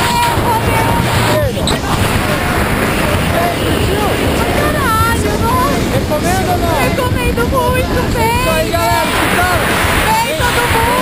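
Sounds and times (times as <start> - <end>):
wind buffeting microphone: 0.0 - 11.0
woman shouting excitedly: 10.1 - 11.0.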